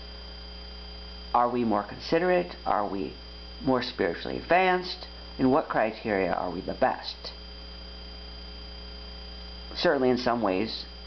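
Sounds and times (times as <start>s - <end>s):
electrical hum: 0.0s - 11.0s
faint high whine: 0.0s - 11.0s.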